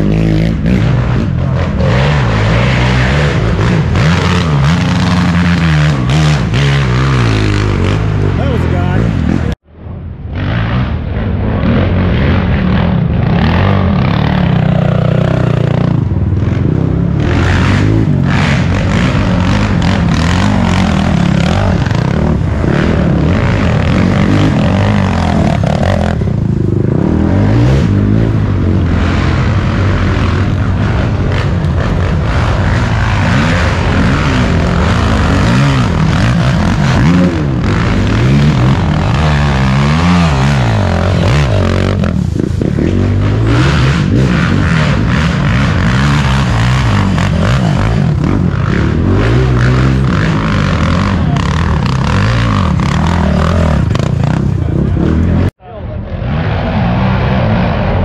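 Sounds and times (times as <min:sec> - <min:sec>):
quad engines revving: 0:00.0 - 0:09.6, 0:10.3 - 0:58.0.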